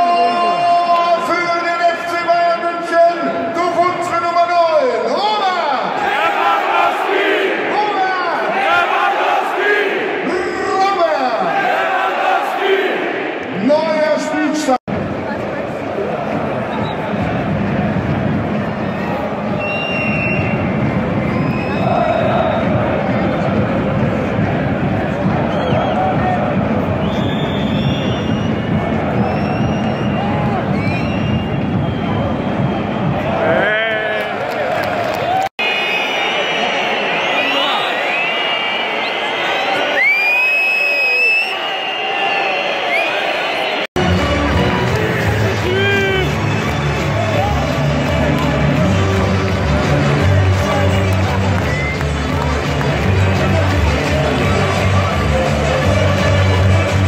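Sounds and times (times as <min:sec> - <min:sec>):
crowd chanting and cheering: 0:04.6 - 0:57.0
shrill whistles: 0:19.6 - 0:22.7, 0:27.0 - 0:33.3, 0:35.6 - 0:43.9, 0:51.6 - 0:52.1.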